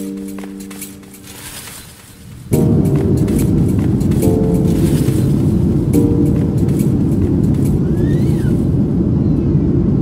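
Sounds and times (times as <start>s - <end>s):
music: 0.0s - 8.8s
airplane cabin noise: 0.0s - 10.0s.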